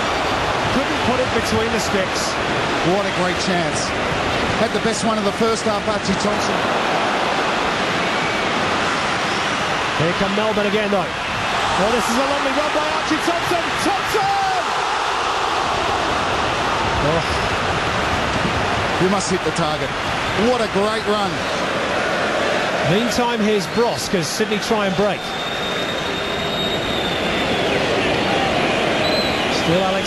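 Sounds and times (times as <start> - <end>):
stadium crowd reacting: 0.0 - 30.0.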